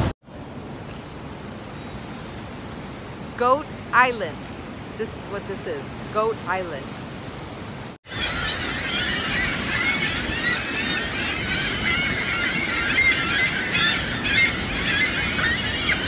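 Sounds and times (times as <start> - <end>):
falling water rushing: 0.0 - 14.2
gulls squawking and crying: 8.1 - 16.0.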